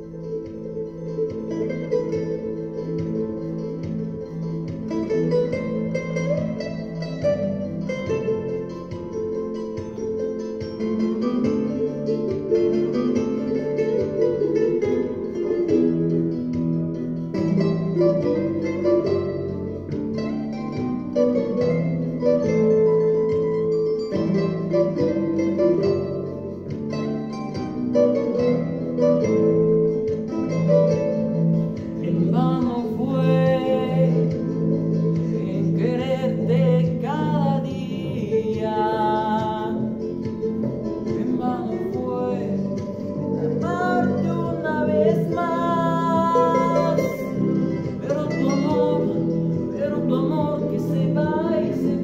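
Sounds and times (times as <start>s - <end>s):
plucked string accompaniment: 0.0s - 52.0s
young man singing with vibrato: 32.0s - 34.3s, 35.4s - 40.0s, 41.1s - 52.0s.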